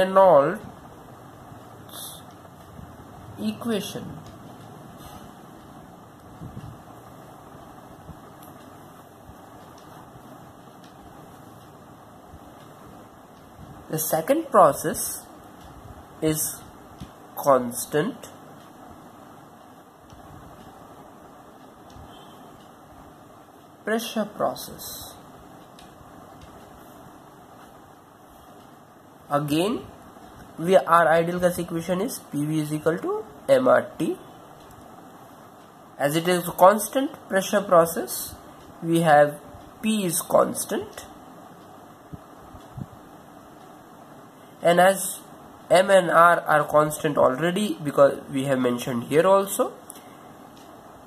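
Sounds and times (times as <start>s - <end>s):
room hum: 0.0s - 51.0s.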